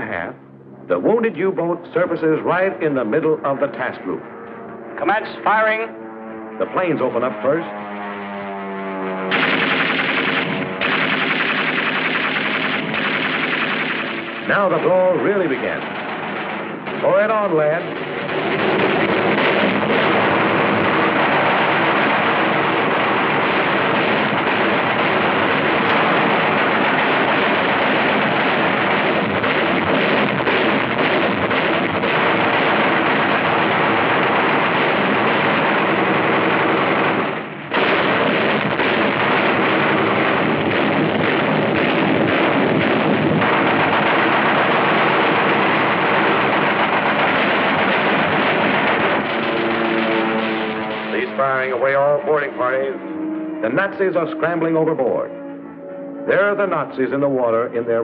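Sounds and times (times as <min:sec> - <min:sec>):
steady low drone: 0:00.0 - 0:58.0
rapid gunfire: 0:09.3 - 0:52.7.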